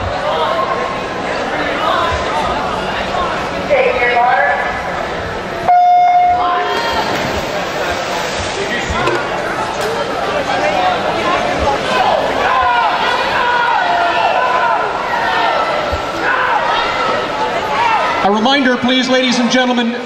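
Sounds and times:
spectators cheering and shouting: 0:00.0 - 0:19.9.

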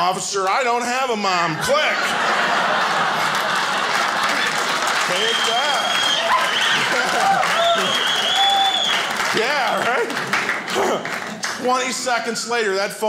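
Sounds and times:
audience laughing: 0:01.2 - 0:08.4, 0:09.0 - 0:11.6
audience clapping: 0:02.2 - 0:12.3.

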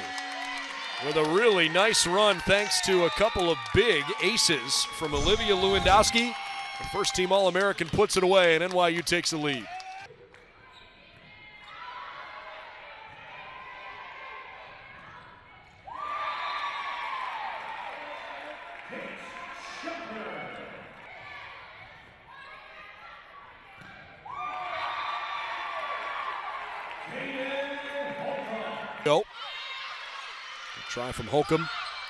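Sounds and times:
players shouting and cheering: 0:00.0 - 0:10.1, 0:22.6 - 0:32.0.

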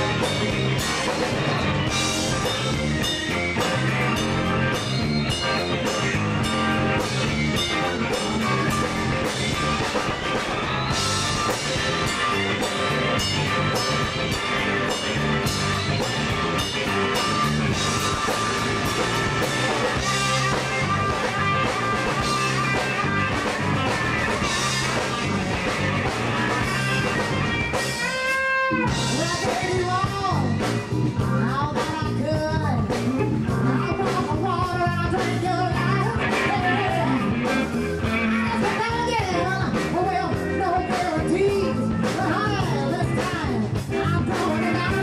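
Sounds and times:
bass guitar: 0:00.0 - 0:45.0
drum kit: 0:00.0 - 0:45.0
electric guitar: 0:00.0 - 0:45.0.

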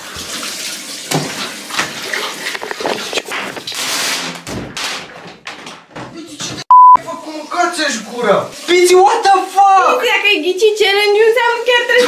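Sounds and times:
water running from tap: 0:00.0 - 0:04.2, 0:07.0 - 0:12.0
knock or splash: 0:01.0 - 0:02.0.

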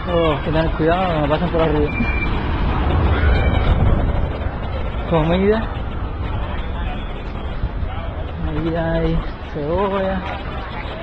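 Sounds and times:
large truck nearby: 0:00.0 - 0:11.0
street traffic rumble: 0:00.0 - 0:11.0.

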